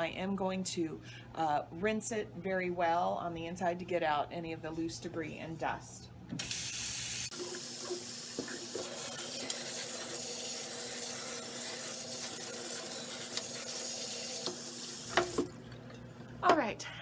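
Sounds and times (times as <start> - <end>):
tap water running into sink: 6.4 - 15.7.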